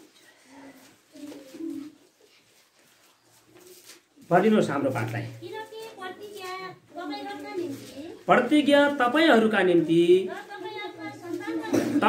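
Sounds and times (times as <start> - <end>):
pigeon cooing: 0.6 - 2.4.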